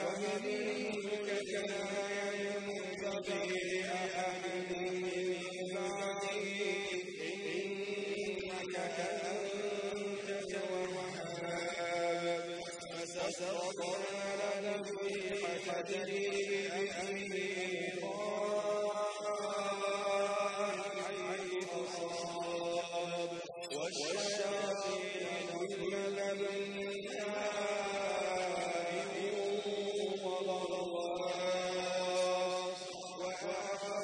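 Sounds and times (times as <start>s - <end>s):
man chanting melodically: 0.0s - 34.0s.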